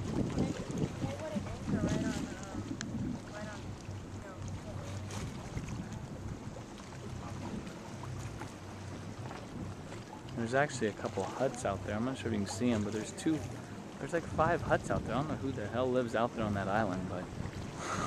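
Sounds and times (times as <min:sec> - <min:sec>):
water noise: 0:00.0 - 0:18.0
wind buffeting microphone: 0:00.0 - 0:18.0.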